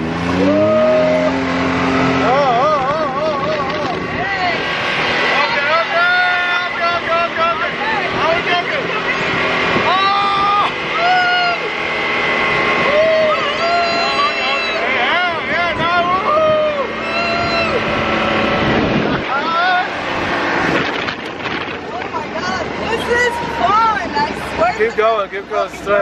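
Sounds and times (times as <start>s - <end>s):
buggy engine revving: 0.0s - 26.0s
people yelling and screaming: 0.3s - 20.1s, 21.9s - 24.9s.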